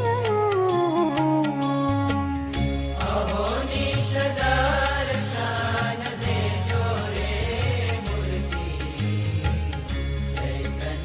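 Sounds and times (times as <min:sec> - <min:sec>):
devotional hymn: 0:01.4 - 0:11.0.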